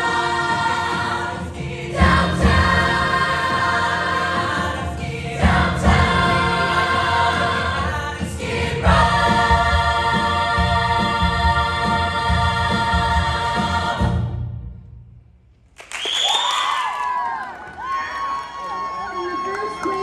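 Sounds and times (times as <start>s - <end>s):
chorus singing in harmony: 0.0s - 14.7s.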